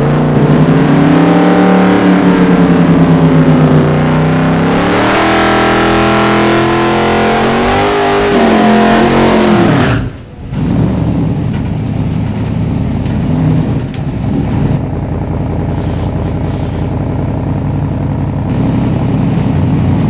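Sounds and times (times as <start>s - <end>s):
engine lumpy idle: 10.0s - 20.0s.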